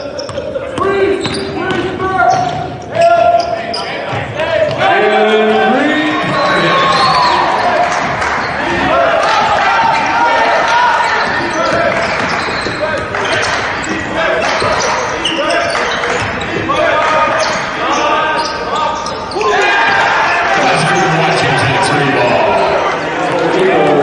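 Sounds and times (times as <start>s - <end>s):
players calling out: 0.0s - 24.0s
basketball bouncing: 1.2s - 2.8s, 11.2s - 14.0s.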